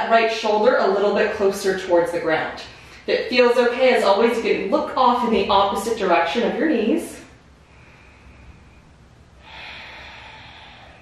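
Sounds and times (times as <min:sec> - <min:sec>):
person exhaling: 0:09.4 - 0:11.0.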